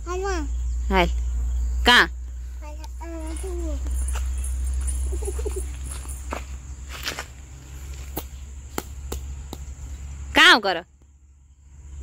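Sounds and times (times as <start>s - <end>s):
footsteps on dry dirt: 3.2s - 10.2s.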